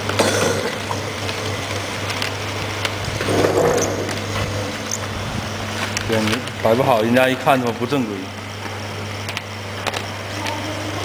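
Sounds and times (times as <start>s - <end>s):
wire stripping head grinding: 0.0s - 10.7s
electric motor humming: 0.0s - 11.0s.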